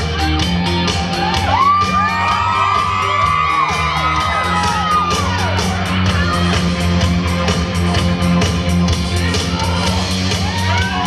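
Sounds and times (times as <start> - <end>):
drums with steady cymbal beat: 0.0 - 11.0
sustained bass: 0.0 - 11.0
audience whooping: 1.1 - 6.6, 9.4 - 11.0.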